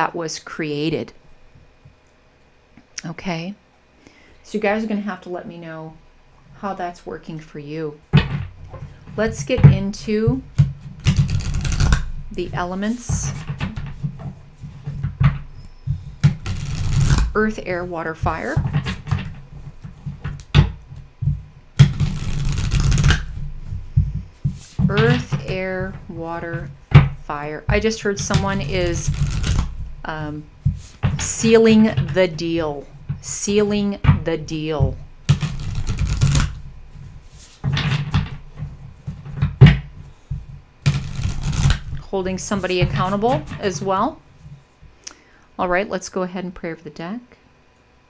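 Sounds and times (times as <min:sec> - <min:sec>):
deck of cards knocking: 0:08.2 - 0:17.5, 0:18.2 - 0:36.7
playing cards shuffling: 0:10.8 - 0:15.4, 0:16.0 - 0:17.6, 0:21.8 - 0:26.7, 0:28.2 - 0:33.0, 0:35.2 - 0:43.8
dull low knocks: 0:23.2 - 0:35.3.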